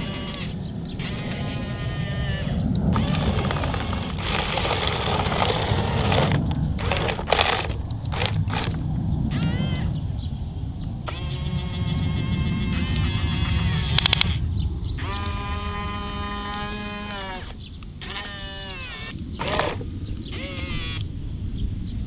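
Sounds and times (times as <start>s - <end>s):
electric motors whining: 0.0s - 9.9s, 11.1s - 14.4s, 15.0s - 21.0s
rattle of sharp clicks: 2.9s - 8.8s.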